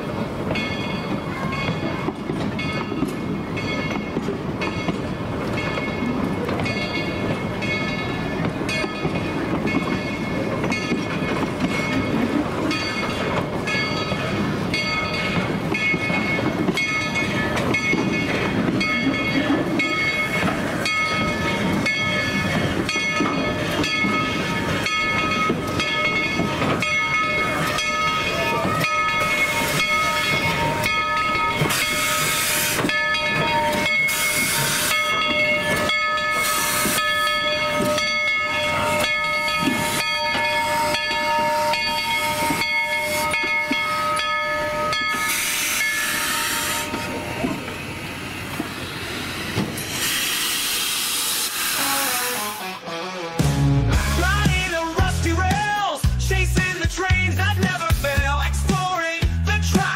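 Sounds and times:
steam locomotive chuffing: 0:00.0 - 0:53.1
steam hissing: 0:31.5 - 0:32.9, 0:33.8 - 0:35.2, 0:36.3 - 0:37.4, 0:45.1 - 0:52.8.

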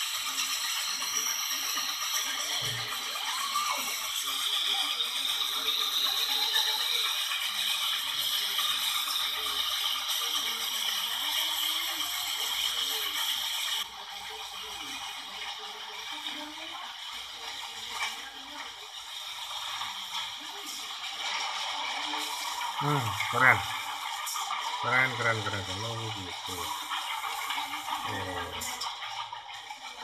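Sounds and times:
steam locomotive hissing and rattling: 0:00.0 - 0:30.0.

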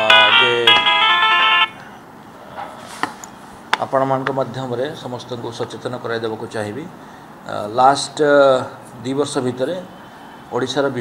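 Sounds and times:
phone ringtone melody: 0:00.0 - 0:02.0.

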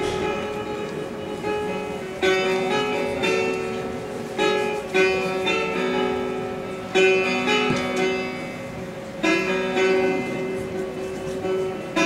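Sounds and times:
plucked lute melody: 0:00.0 - 0:12.0.

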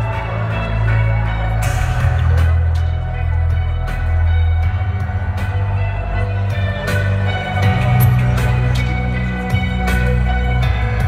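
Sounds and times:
deep bass notes: 0:00.0 - 0:11.0
live concert music over speakers: 0:00.0 - 0:11.0.

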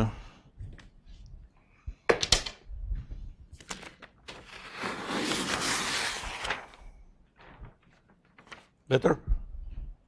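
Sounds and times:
paper sliding across table: 0:04.3 - 0:07.8.

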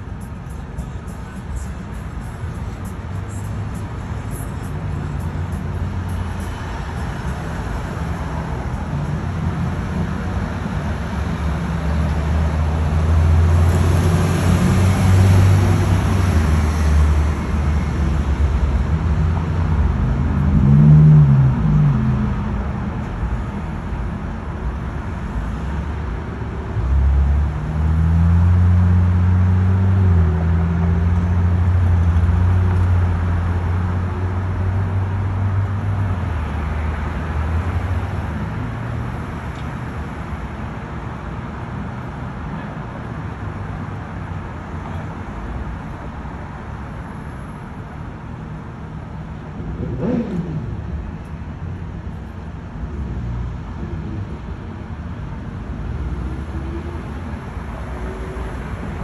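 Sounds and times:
hum of car engines: 0:00.0 - 0:59.0
vehicle passing: 0:49.5 - 0:51.2
engine note rising and falling: 0:49.6 - 0:51.4.

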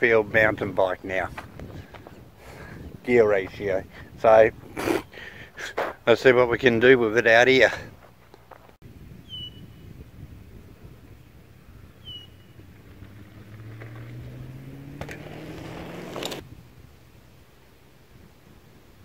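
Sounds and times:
bird chirping: 0:09.2 - 0:09.9, 0:11.7 - 0:13.2.

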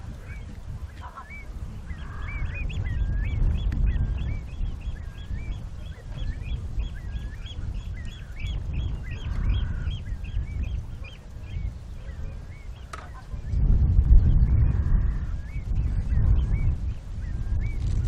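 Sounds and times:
waterbirds calling: 0:00.0 - 0:13.6
steady low rumble: 0:00.0 - 0:18.0.

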